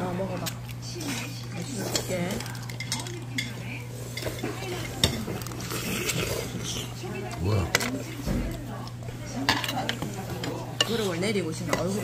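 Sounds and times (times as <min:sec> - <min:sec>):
utensils clinking on metal pot: 0:00.3 - 0:05.8, 0:09.4 - 0:12.0.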